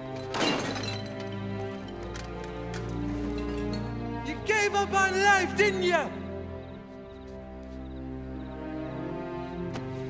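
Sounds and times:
background music: 0.0s - 10.0s
glass breaking: 0.2s - 1.2s.

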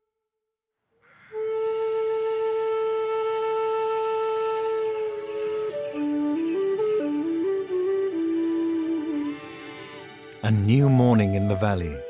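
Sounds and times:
background music: 1.4s - 12.0s.

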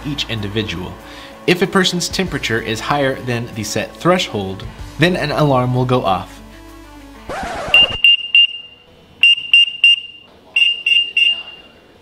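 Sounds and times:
high-pitched electronic alarm beeps: 7.6s - 11.8s.

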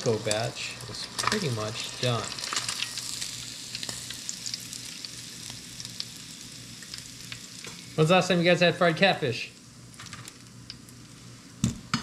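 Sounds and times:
oil crackling and popping: 0.0s - 8.4s, 9.5s - 12.0s
fish frying in oil: 0.0s - 11.1s.

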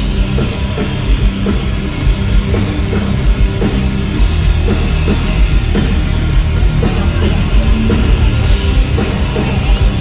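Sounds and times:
drum kit beating: 0.0s - 10.0s
rock band playing live: 0.0s - 10.0s.

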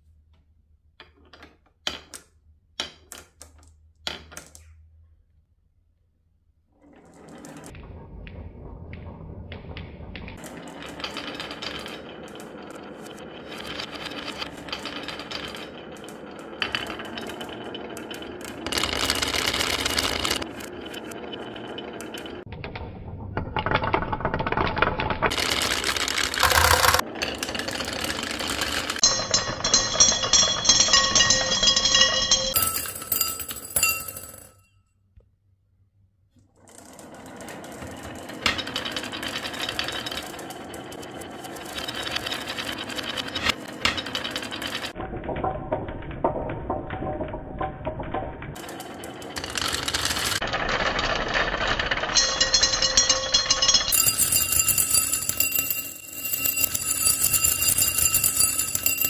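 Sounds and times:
marbles rolling down wooden run: 6.9s - 34.5s, 36.6s - 59.0s.

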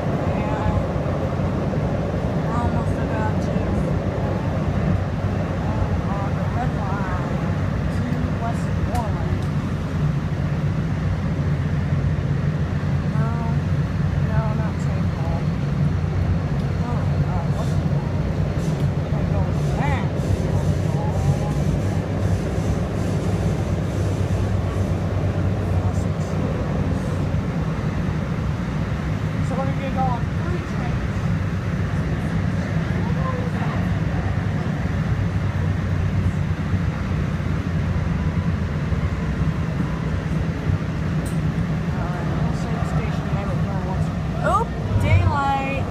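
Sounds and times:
faint passenger voices: 0.0s - 12.1s, 12.7s - 45.9s
light-rail car rumbling: 0.0s - 45.9s.

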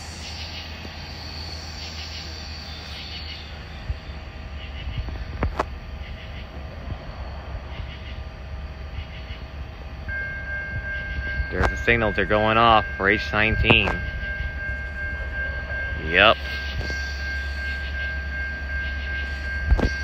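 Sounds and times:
freight train rumbling: 0.0s - 20.0s
steady high tone: 0.0s - 20.0s.

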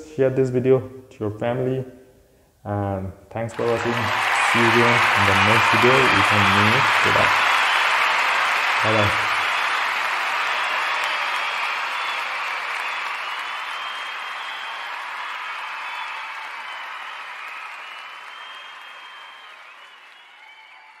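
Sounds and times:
crowd applause: 3.5s - 21.0s
faint whistles: 10.5s - 21.0s.

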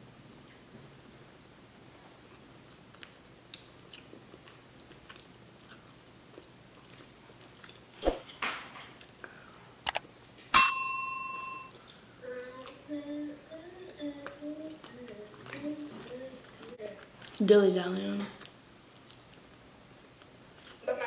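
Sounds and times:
bright bell ding: 10.6s - 11.7s.

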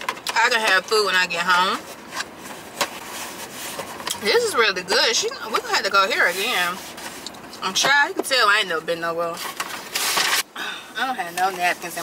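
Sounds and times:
food packaging rustling: 9.3s - 10.5s.

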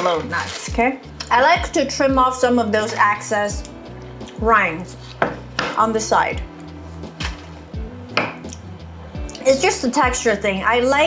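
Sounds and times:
background music with low beat: 0.2s - 9.4s
knife cutting cheese rind: 4.9s - 5.5s.

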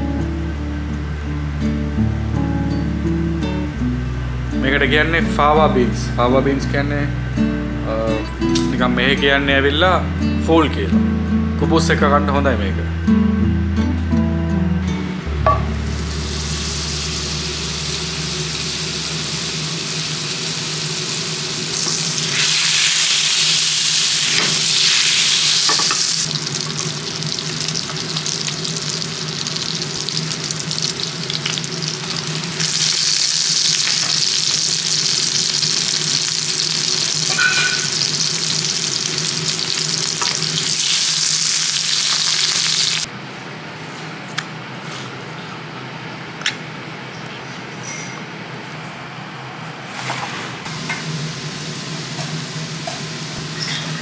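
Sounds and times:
butter sizzling in frying pan: 15.8s - 43.1s.

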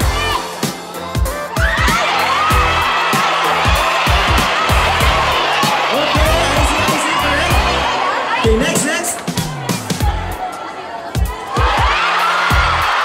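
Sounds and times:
crowd cheering and shouting: 0.0s - 13.0s
dance track over loudspeakers: 0.0s - 13.0s.

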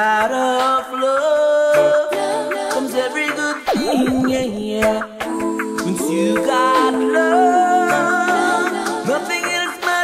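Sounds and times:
reggae bass line: 0.0s - 10.0s.

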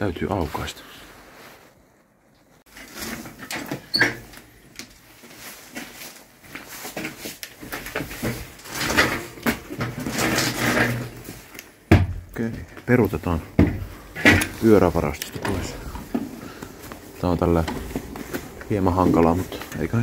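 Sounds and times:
bicycle rattling and clattering: 6.7s - 11.5s.

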